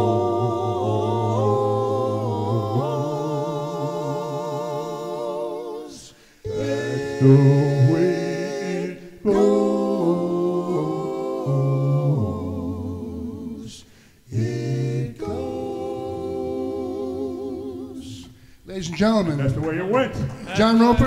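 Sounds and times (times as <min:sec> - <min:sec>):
a cappella group singing harmony: 0:00.0 - 0:18.6.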